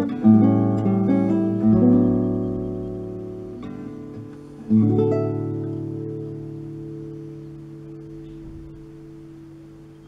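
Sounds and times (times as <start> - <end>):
classical guitar chord ringing: 0.0 - 10.0.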